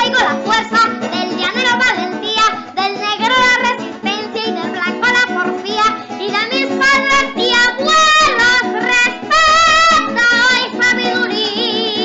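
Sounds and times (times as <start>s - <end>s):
boy singing into a microphone: 0.0s - 12.0s
instrumental accompaniment: 0.0s - 12.0s.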